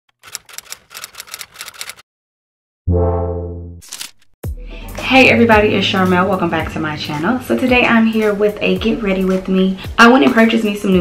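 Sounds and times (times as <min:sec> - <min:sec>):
typewriter key clacks: 0:00.2 - 0:02.0.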